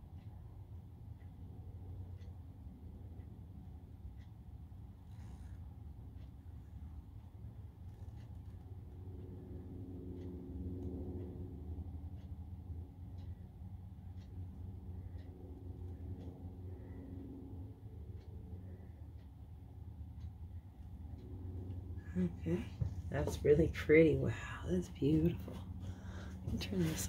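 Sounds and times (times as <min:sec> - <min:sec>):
faint ticks: 0:00.0 - 0:24.0
low room hum: 0:00.0 - 0:27.0.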